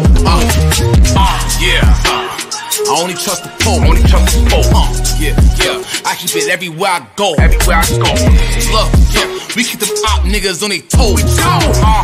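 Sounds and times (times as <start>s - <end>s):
heavy bass beat: 0.0s - 12.0s
rapping over a beat: 0.0s - 12.0s.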